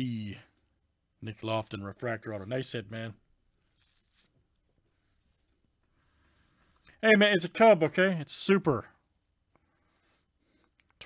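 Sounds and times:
trading cards rustling: 3.6s - 5.5s.

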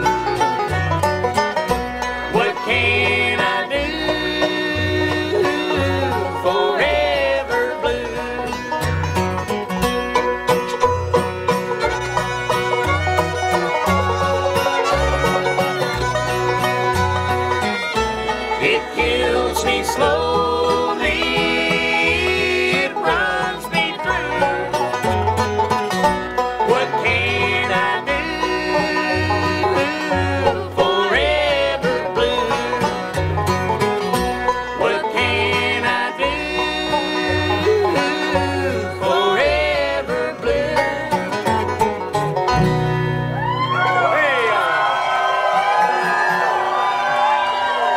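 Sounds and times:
bowed fiddle sliding: 0.0s - 43.3s
bass alternating notes: 0.0s - 44.2s
guitar picking: 0.0s - 44.2s
banjo picking: 0.0s - 47.9s.

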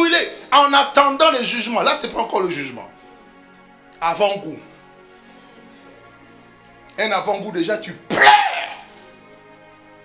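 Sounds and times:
soft keyboard chords: 0.0s - 8.1s.

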